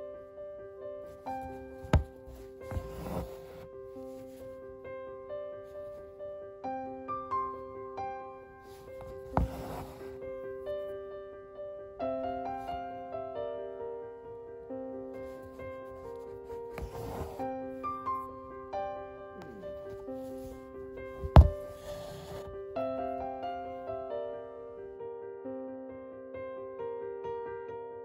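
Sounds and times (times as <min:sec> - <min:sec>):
gentle piano music: 0:00.0 - 0:28.0
soft rustle: 0:01.1 - 0:04.8, 0:08.6 - 0:10.3, 0:15.2 - 0:18.3, 0:19.4 - 0:22.7
thread rubbing through fabric: 0:01.4 - 0:04.5, 0:08.7 - 0:10.2, 0:15.3 - 0:17.5, 0:19.4 - 0:22.6.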